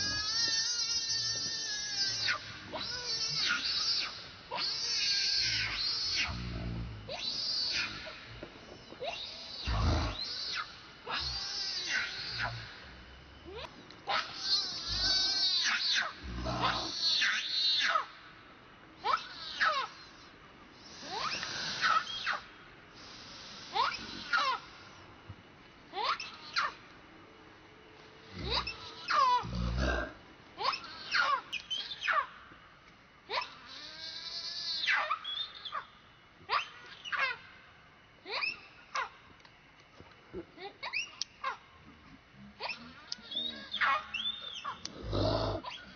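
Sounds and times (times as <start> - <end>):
infant monkey screaming: 0.0 - 8.3, 9.0 - 12.9, 13.5 - 18.2, 19.0 - 22.5, 23.5 - 25.0, 25.9 - 26.9, 28.3 - 32.4, 33.3 - 37.6, 38.2 - 39.2, 40.6 - 41.6, 42.6 - 45.9.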